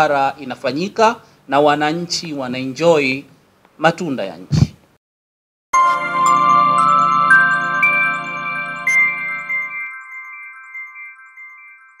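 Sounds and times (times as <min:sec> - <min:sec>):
low sustained chord: 0:05.8 - 0:10.3
bell-like chime notes: 0:05.8 - 0:12.0.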